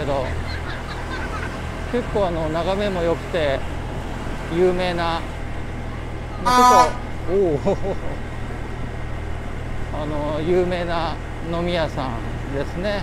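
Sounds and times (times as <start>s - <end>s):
motorbike engine drone: 0.0s - 13.0s
party horn toot: 6.5s - 7.1s.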